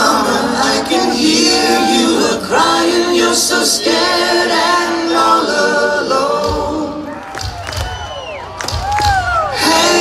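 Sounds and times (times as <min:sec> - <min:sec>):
live band vocal harmonies: 0:00.0 - 0:08.1, 0:08.7 - 0:10.0
crowd whooping and whistling: 0:07.1 - 0:09.6.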